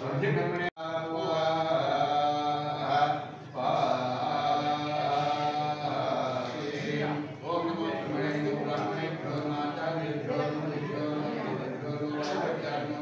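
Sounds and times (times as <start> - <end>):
man chanting in long tones: 0.0 - 13.0.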